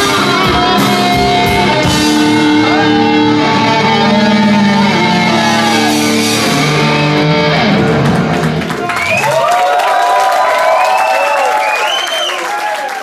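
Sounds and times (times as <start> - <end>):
rock band sustained chord: 0.0 - 8.8
audience cheering and whistling: 2.6 - 7.2, 7.9 - 13.0.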